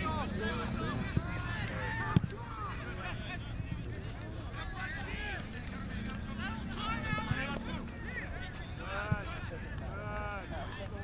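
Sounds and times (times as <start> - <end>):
distant crowd shouting: 0.0 - 11.0.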